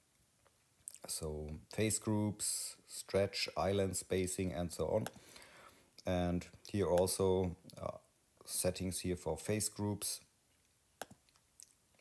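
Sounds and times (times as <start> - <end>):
person speaking: 0.8 - 10.4.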